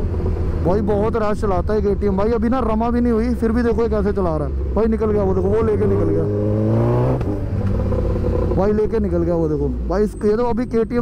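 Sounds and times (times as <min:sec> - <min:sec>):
motorcycle engine accelerating: 0:00.0 - 0:09.8
wind and road rumble: 0:00.0 - 0:11.0.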